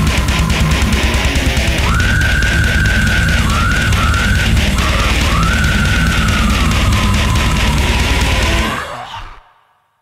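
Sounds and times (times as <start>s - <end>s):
death metal guitars and drums: 0.0s - 9.4s.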